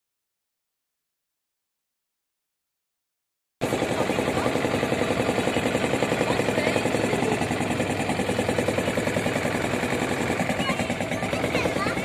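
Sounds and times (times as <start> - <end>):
boat engine throbbing: 3.6 - 12.0.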